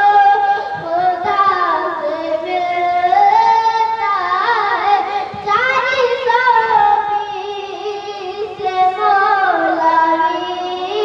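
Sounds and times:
boy singing into a microphone: 0:00.0 - 0:11.0
singer breathing: 0:05.1 - 0:05.5.

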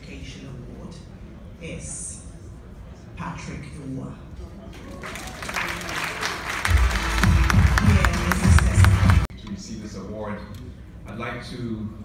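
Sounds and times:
audience applauding: 0:04.8 - 0:09.3
loud music with heavy bass beat: 0:06.7 - 0:09.2.

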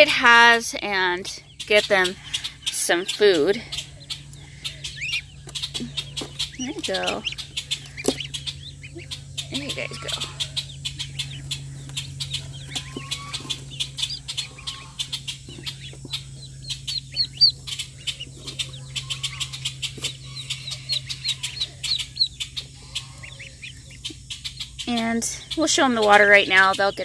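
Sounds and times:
ducklings peeping: 0:00.0 - 0:27.0
steady low hum: 0:00.0 - 0:27.0.

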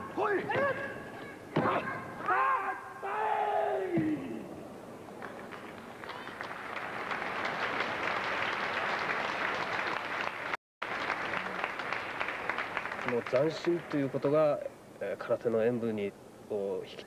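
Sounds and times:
audience applauding: 0:05.7 - 0:14.1.

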